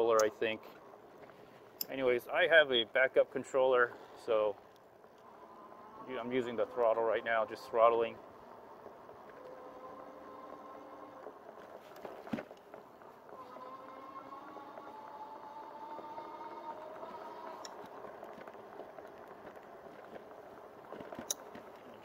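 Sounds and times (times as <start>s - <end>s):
tyre and wind noise: 0.0s - 22.0s
electric motor whining: 5.2s - 7.8s, 8.4s - 12.2s, 13.1s - 18.5s.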